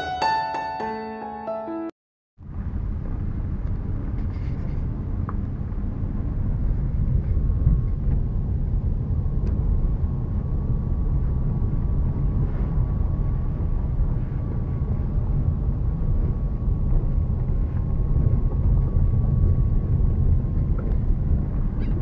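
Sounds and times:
car cabin road rumble: 0:02.4 - 0:22.0.

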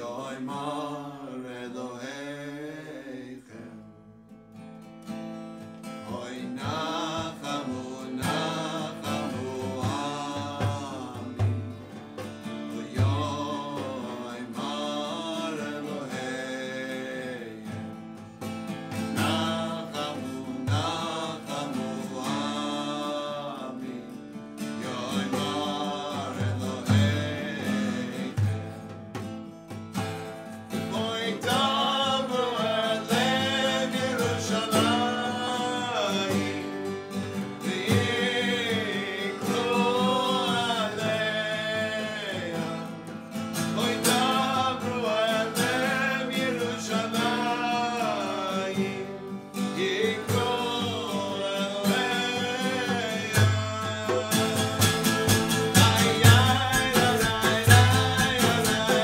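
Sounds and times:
man and woman singing: 0:00.0 - 0:04.0, 0:05.9 - 0:29.0, 0:30.7 - 0:59.0
acoustic guitar strumming: 0:02.4 - 0:59.0.

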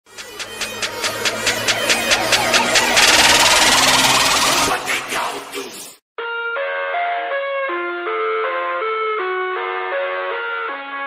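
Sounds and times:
stuttering electronic beat: 0:00.1 - 0:05.8
loud rushing noise: 0:00.2 - 0:05.7.

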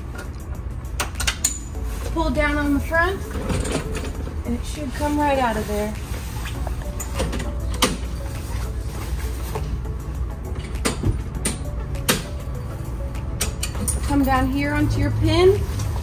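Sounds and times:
canvas rustling: 0:01.7 - 0:10.2.

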